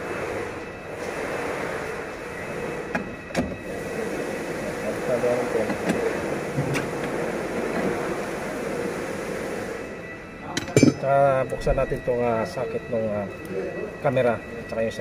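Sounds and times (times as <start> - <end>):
steady background hum: 0.0 - 15.0.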